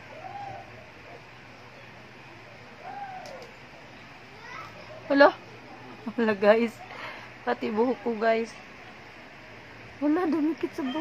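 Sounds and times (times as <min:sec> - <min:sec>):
distant voice-like calls: 0:00.0 - 0:05.7
low steady background noise: 0:00.0 - 0:11.0.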